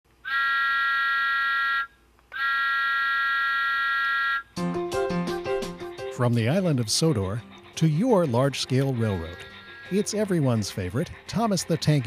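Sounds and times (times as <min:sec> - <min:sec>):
background music: 0:04.6 - 0:12.0.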